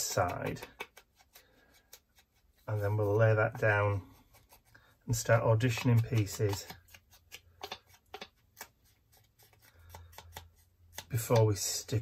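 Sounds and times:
foam tool dabbing on paper: 0:00.0 - 0:11.5.

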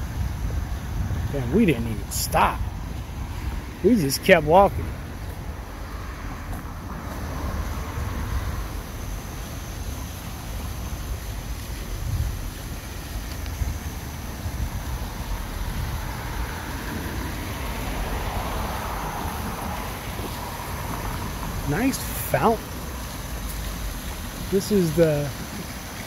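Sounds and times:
wind rumbling on microphone: 0:00.0 - 0:24.6
outdoor rushing noise: 0:00.0 - 0:26.0.

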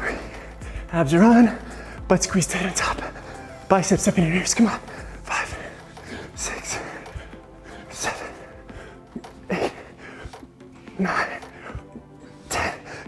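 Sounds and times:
background music: 0:00.0 - 0:13.0
man breathing and grunting: 0:00.0 - 0:13.0.

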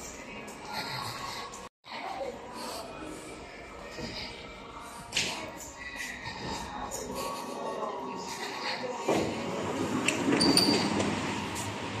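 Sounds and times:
indistinct background voices: 0:00.0 - 0:10.4.

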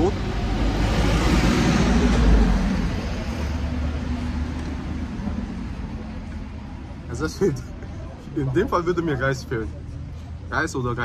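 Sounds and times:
vehicle passing with tyre hiss: 0:00.0 - 0:05.9.

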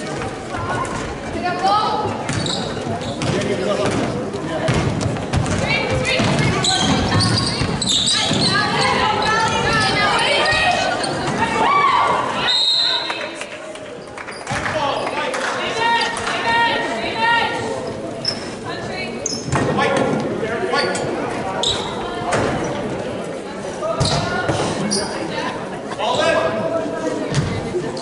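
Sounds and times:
echoing voices: 0:00.0 - 0:14.0.

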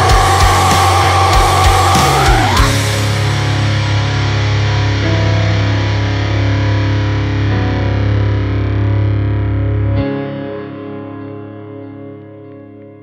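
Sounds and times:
heavy low bass: 0:00.0 - 0:10.2
distorted electric guitar chord: 0:00.0 - 0:13.0.

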